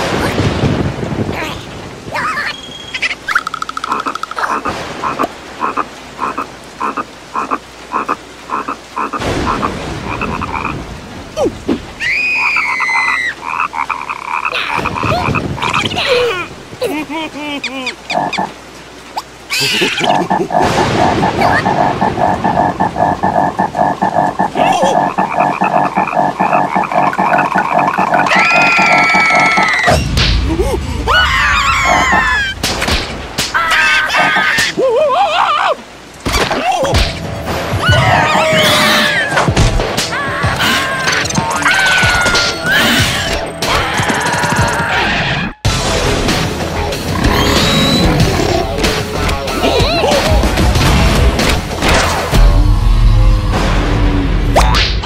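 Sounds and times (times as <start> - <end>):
cartoon frog croaking: 3.0 - 10.8, 12.4 - 16.0, 17.8 - 18.6, 19.2 - 29.9
squeaky cartoon cries: 19.5 - 20.1.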